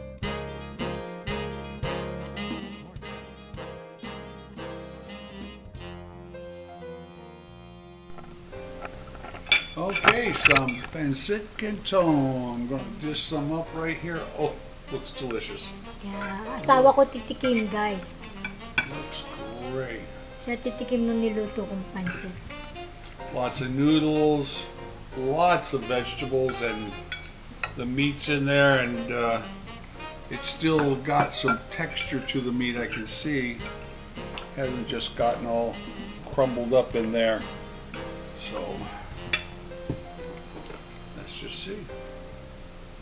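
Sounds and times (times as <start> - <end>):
background music: 0.0 - 43.0
metal fork clinking on ceramic bowl: 9.5 - 10.8, 26.5 - 27.8, 30.8 - 33.0, 39.3 - 39.5
soft knock: 39.8 - 40.8.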